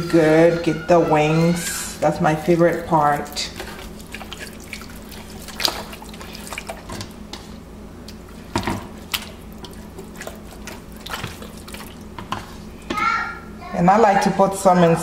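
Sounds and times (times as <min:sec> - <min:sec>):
hands rubbing wet marinade into meat: 0:00.3 - 0:12.8.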